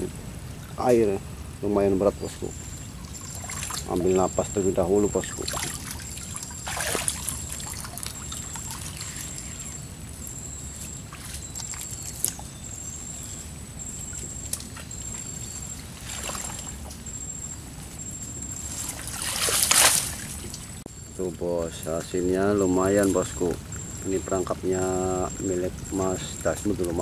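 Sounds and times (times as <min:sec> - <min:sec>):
water splashing: 0:00.0 - 0:17.5, 0:18.6 - 0:20.8
river water trickling and sloshing: 0:00.0 - 0:21.3, 0:22.8 - 0:27.0
net trap draining water: 0:03.0 - 0:09.6.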